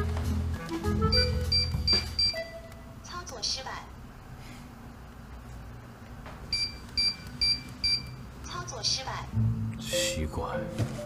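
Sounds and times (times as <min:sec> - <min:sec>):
recorded voice announcing: 0:09.8 - 0:10.7.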